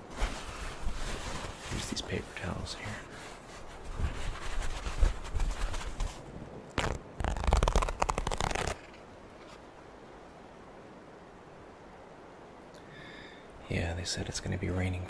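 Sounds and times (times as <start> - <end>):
paper towel unrolling and rustling: 0.0 - 9.6
faint steady hiss: 0.0 - 15.0
paper towel tearing: 6.8 - 9.0.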